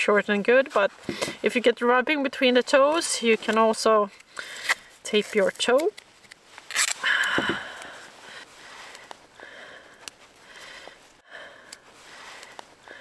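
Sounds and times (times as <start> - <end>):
tape handled with clicks: 3.5 - 7.9
soft breaths through nose: 7.0 - 13.0.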